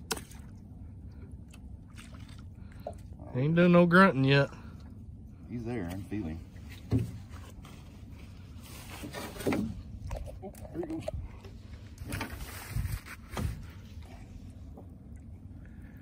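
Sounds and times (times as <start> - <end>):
steady low rumble: 0.0 - 16.0
water sloshing off line: 0.0 - 16.0
knocks and rustles: 6.6 - 7.9, 8.9 - 9.9.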